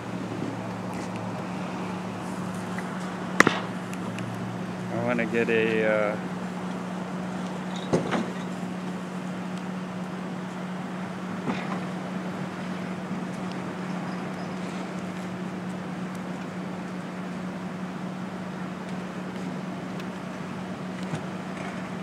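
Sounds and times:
outdoor background noise: 0.0s - 22.0s
steady low hum: 0.0s - 22.0s.

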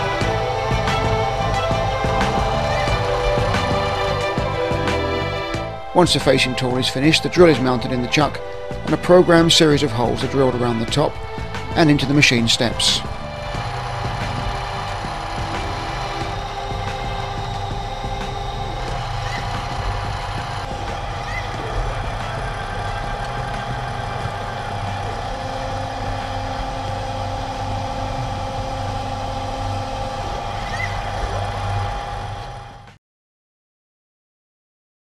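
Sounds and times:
low hum: 0.0s - 33.0s
milling machine drilling metal: 0.0s - 33.0s
steady high whine: 0.0s - 33.0s.

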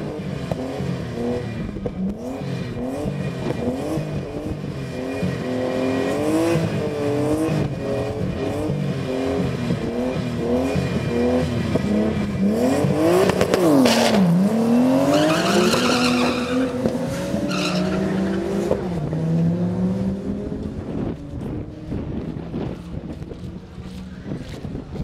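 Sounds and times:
drag racing cars accelerating: 0.0s - 25.0s.

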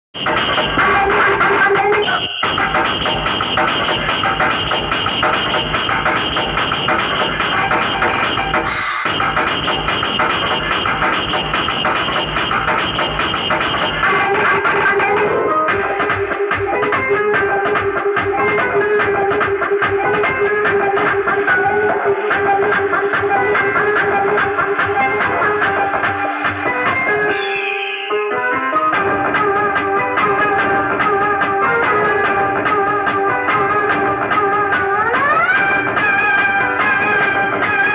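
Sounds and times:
loud electronic dance music: 0.0s - 37.9s
heavy bass: 0.2s - 27.4s, 28.7s - 37.9s.

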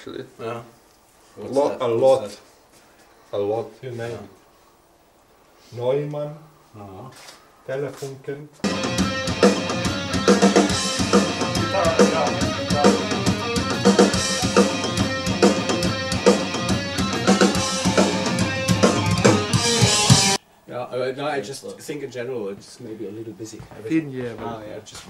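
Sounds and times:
bass drum and cymbal strikes: 8.6s - 20.4s
metal song over monitors: 8.6s - 20.4s.

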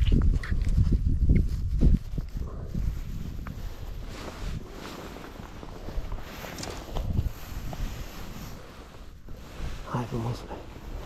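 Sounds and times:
rustling of dry grass and clothing: 0.0s - 11.0s
wind on microphone: 0.0s - 11.0s.

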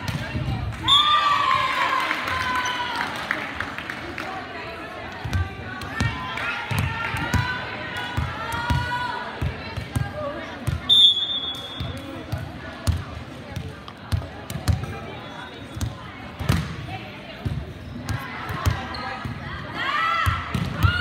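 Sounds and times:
whistle blast: 10.9s - 11.9s.

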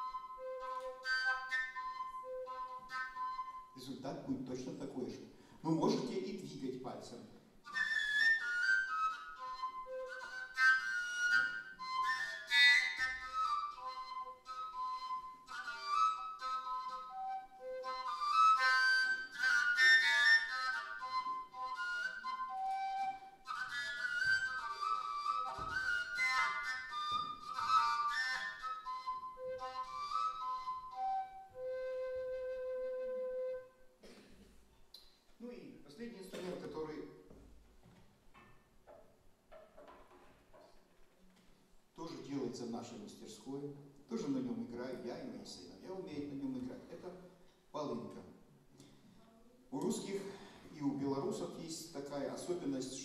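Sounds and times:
breathy overtone flute melody: 0.0s - 3.9s, 7.6s - 34.0s.

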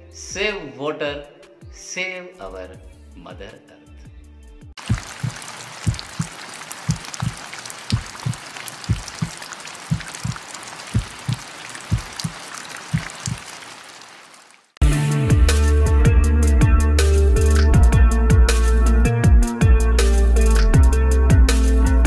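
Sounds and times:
rain hiss with drop ticks: 4.8s - 14.8s.

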